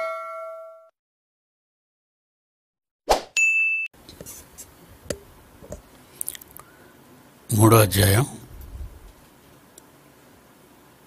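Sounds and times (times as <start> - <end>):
bright ringing ding: 0.0 - 0.9, 3.4 - 3.9.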